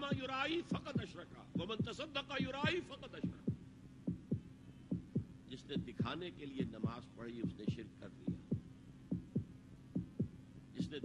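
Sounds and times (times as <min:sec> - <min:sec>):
faint steady hum: 0:00.0 - 0:11.0
heartbeat thumps: 0:00.0 - 0:11.0.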